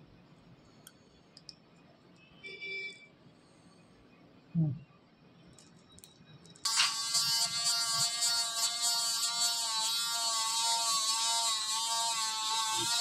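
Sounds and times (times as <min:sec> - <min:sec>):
dental drill whine: 0:06.6 - 0:13.0.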